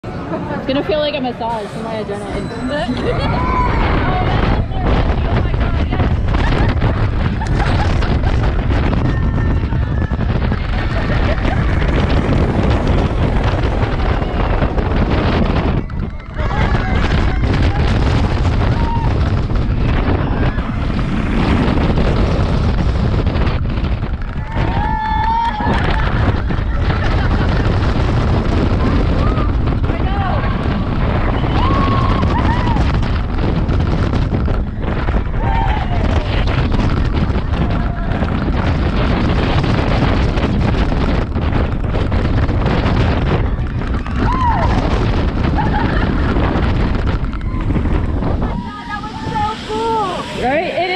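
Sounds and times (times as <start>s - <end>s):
roller coaster racing: 0.0s - 50.9s
wind buffeting microphone: 0.0s - 50.9s
riders screaming and whooping: 2.4s - 50.9s.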